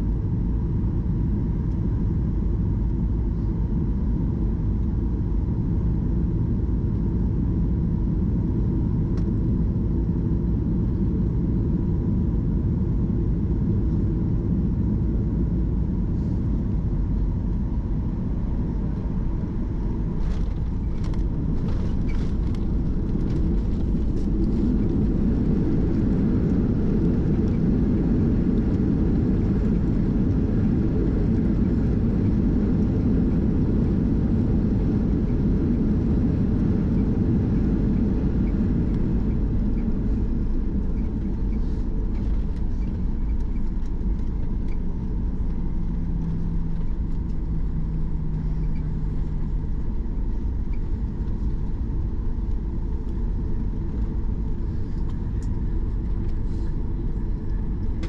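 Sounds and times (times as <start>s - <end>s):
airplane cabin rumble: 0.0s - 58.0s
faint steady hum: 0.0s - 58.0s.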